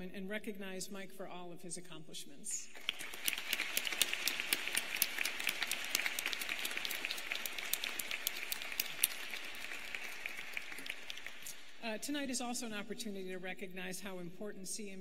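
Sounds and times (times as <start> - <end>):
audience applause: 2.7 - 11.8.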